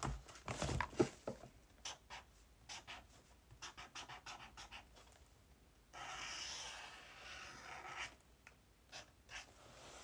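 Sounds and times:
pen drawing on paper: 0:01.8 - 0:05.0, 0:05.9 - 0:08.2, 0:08.9 - 0:10.0.

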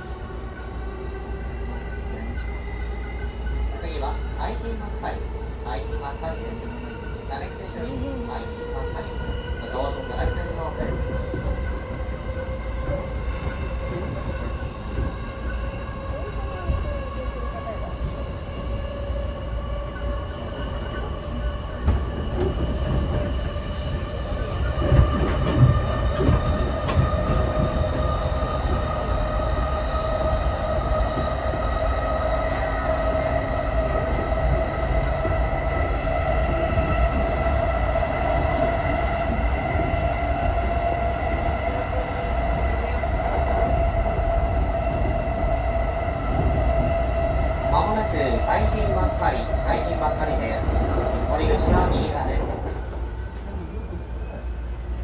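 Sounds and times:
train wheels rumbling on rail: 0:00.0 - 0:55.0.

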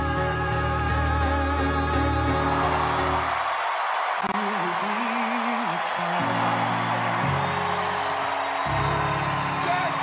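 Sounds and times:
piano playing slow chords: 0:00.0 - 0:03.4, 0:06.2 - 0:10.0
crowd noise: 0:01.8 - 0:10.0.

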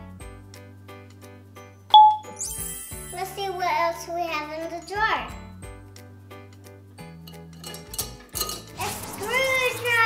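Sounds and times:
light background music: 0:00.0 - 0:10.0
child's voice: 0:03.1 - 0:05.4, 0:08.8 - 0:10.0
small objects clinking in glass jar: 0:07.2 - 0:10.0.

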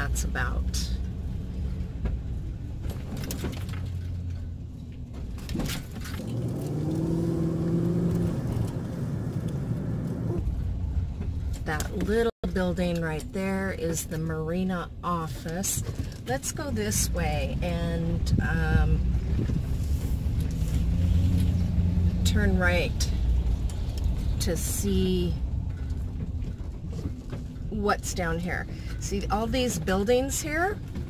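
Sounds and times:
low road rumble: 0:00.0 - 0:31.0
van engine humming: 0:00.0 - 0:31.0.

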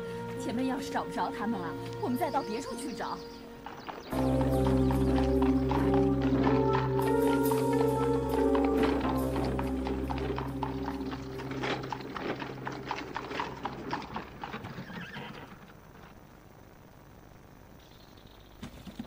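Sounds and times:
background music: 0:00.0 - 0:14.3
horse hooves clip-clopping on pavement: 0:01.8 - 0:16.2.

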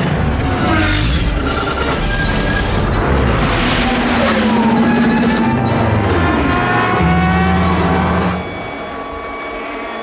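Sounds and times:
deep engine drone with high tones: 0:00.0 - 0:10.0.

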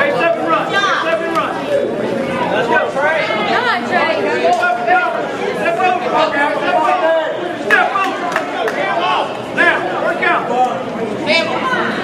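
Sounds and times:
crowd of spectators talking: 0:00.0 - 0:12.0.

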